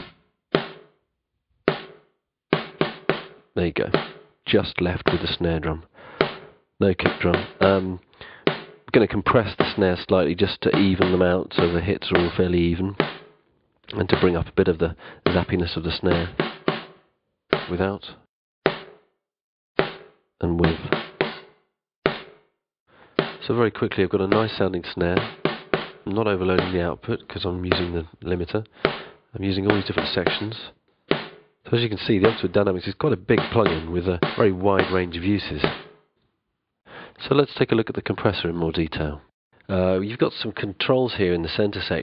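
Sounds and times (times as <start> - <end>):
gated snare drum hits: 0.0 - 0.9, 1.7 - 4.3, 5.0 - 5.4, 6.2 - 8.9, 9.5 - 9.8, 10.6 - 13.4, 14.1 - 14.5, 15.2 - 16.9, 17.5 - 17.8, 18.7 - 19.0, 19.8 - 22.4, 23.2 - 23.5, 24.3 - 27.0, 27.7 - 28.0, 28.8 - 32.6, 33.3 - 36.0.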